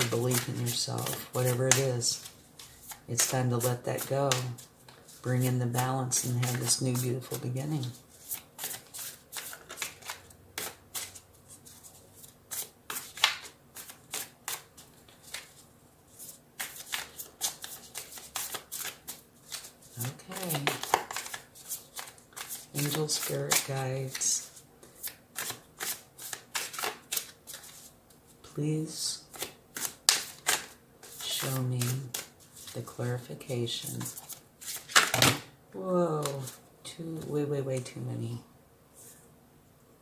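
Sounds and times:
cards being shuffled: 0.0s - 28.3s, 29.3s - 35.5s, 36.1s - 36.6s.

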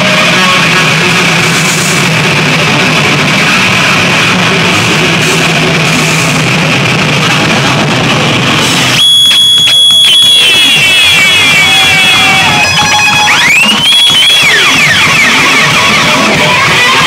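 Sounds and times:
high whine with sweeping pitch: 0.0s - 17.0s
live rock band playing: 0.0s - 17.0s.

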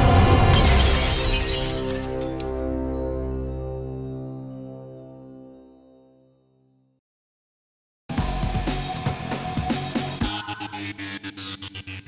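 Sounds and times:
glass shattering: 0.5s - 2.8s.

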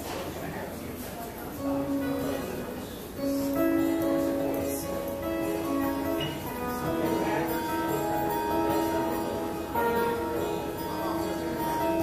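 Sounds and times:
solo guitar picking: 1.6s - 12.0s.

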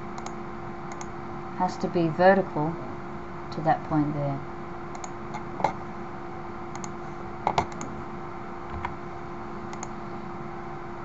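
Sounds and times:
computer mouse clicks: 0.2s - 1.1s, 4.9s - 5.8s, 6.7s - 7.9s, 9.7s - 9.9s.

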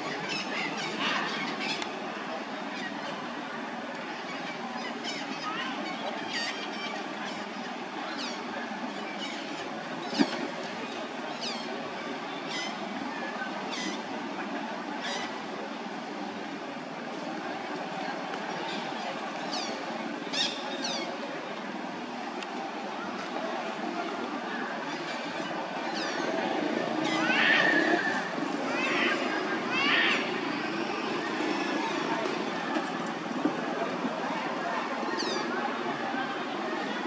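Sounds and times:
outdoor background noise: 0.0s - 37.0s.

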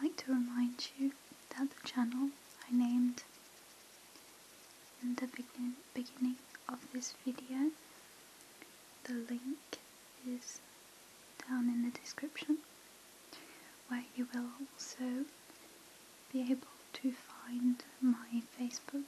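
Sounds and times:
woman speaking softly: 0.0s - 3.3s, 5.0s - 7.8s, 9.1s - 10.6s, 11.4s - 12.6s, 13.9s - 15.3s, 16.3s - 19.0s.

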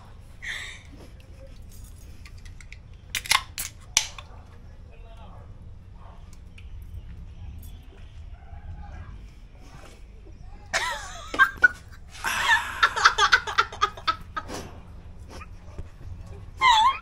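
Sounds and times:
metal drink cans clicking: 2.2s - 4.3s.

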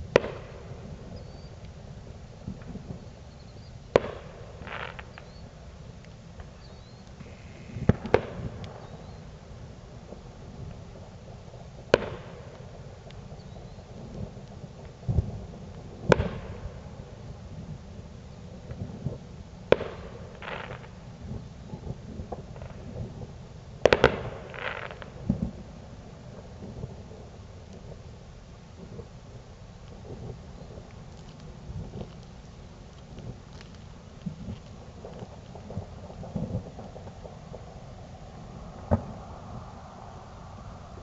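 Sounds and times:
fireworks bangs: 0.0s - 1.6s, 2.4s - 5.6s, 6.4s - 17.2s, 18.6s - 27.1s, 30.0s - 41.0s
fireworks crackle: 0.0s - 41.0s.

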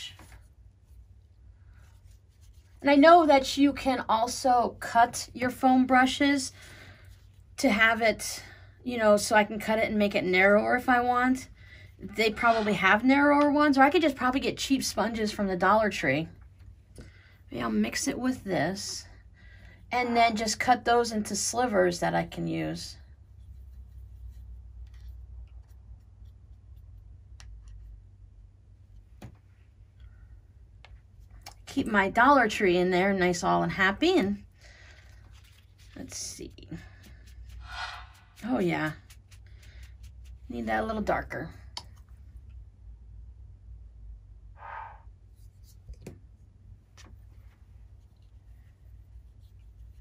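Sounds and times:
soft rustle: 0.0s - 3.4s, 6.5s - 7.6s, 22.9s - 27.1s, 34.7s - 41.2s, 45.3s - 50.0s
low steady hum: 0.0s - 50.0s.

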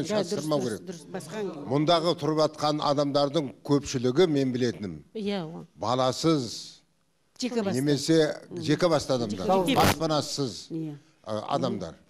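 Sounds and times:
man speaking into a microphone: 0.0s - 5.0s, 7.7s - 12.0s.

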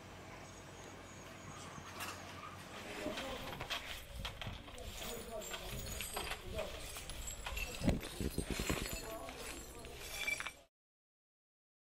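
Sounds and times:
faint voices: 2.5s - 10.7s.

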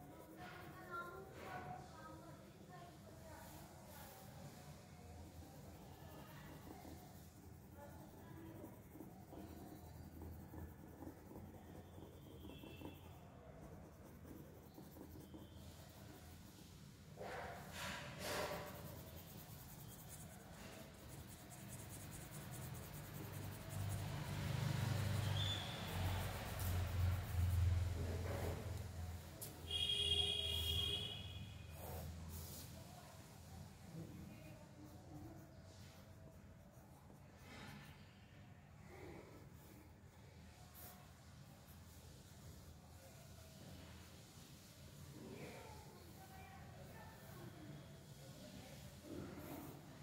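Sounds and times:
pencil scratching on paper: 0.0s - 2.4s, 3.1s - 30.9s, 31.6s - 33.3s, 33.9s - 38.0s, 48.1s - 50.0s.

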